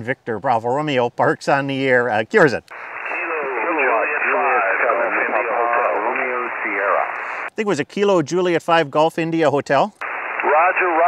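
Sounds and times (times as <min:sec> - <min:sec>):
radio band noise: 0:02.7 - 0:07.5, 0:10.0 - 0:11.0
radio voices overlapping: 0:02.7 - 0:07.6, 0:10.0 - 0:11.0.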